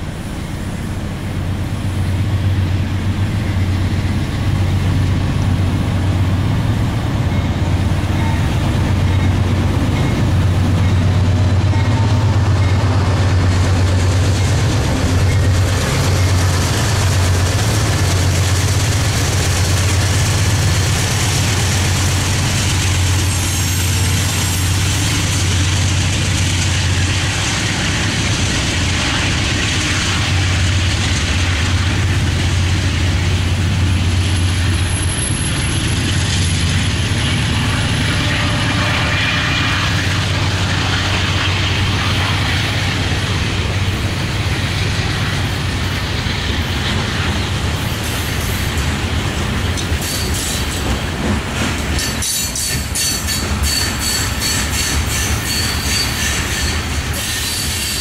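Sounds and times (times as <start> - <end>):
freight train rumbling past: 0.0 - 58.0.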